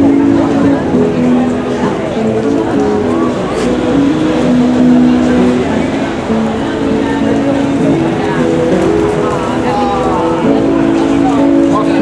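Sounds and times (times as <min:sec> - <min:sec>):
crowd chatter: 0:00.0 - 0:12.0
street music melody: 0:00.0 - 0:12.0.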